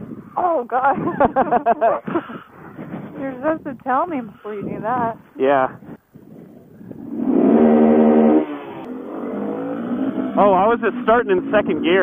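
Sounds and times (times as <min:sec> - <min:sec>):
motorcycle engine pulling away: 0:06.8 - 0:12.0.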